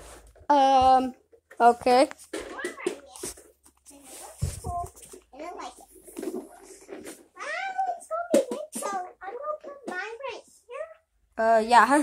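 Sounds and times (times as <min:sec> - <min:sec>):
child talking: 0:02.5 - 0:11.1.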